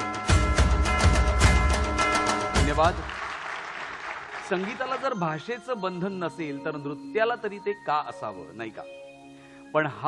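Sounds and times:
audience applause: 2.8s - 5.4s.

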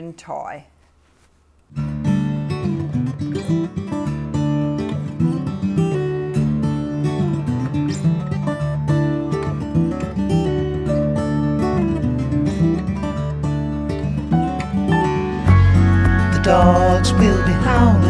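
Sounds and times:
acoustic guitar music: 1.7s - 18.0s.

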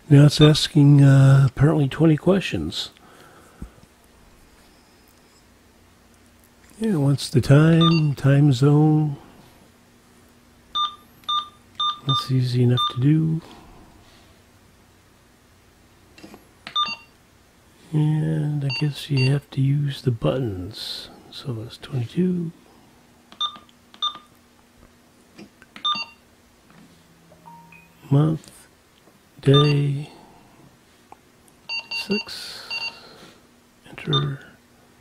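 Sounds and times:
faint low hum: 0.0s - 35.0s
keypad beeps: 10.8s - 13.0s, 16.7s - 17.1s, 23.4s - 24.3s, 25.8s - 26.2s, 27.4s - 28.0s, 31.7s - 33.0s.

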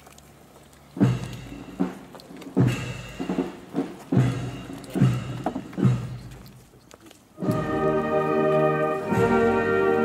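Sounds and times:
brass band playing: 7.4s - 10.0s.

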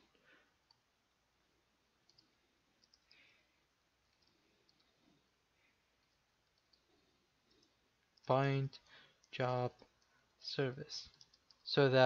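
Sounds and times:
faint keyboard clicks: 2.0s - 3.4s, 4.1s - 5.1s, 6.0s - 10.2s, 11.0s - 11.8s.

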